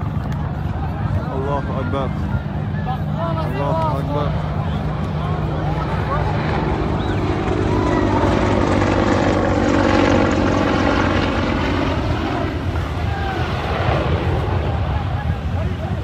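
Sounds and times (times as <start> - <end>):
aircraft engine climbing overhead: 0.0 - 16.0
crowd voices: 0.0 - 16.0.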